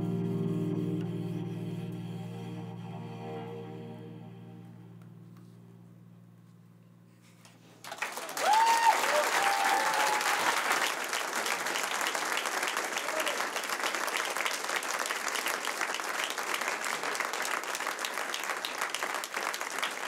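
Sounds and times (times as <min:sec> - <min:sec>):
audience applauding: 0:07.8 - 0:20.0.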